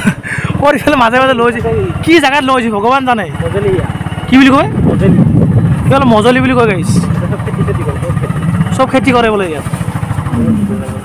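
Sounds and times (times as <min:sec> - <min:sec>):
small motorcycle engine running: 0:00.4 - 0:11.0.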